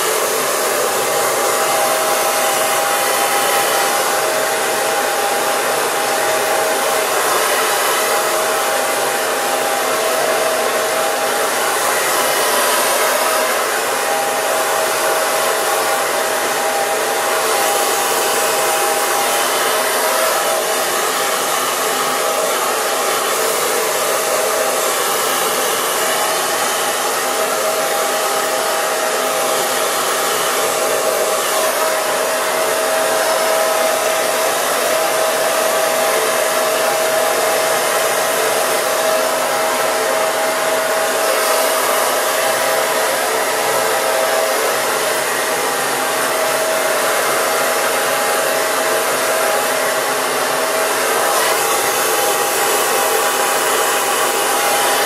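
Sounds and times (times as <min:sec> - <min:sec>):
hair dryer blowing: 0:00.0 - 0:55.0.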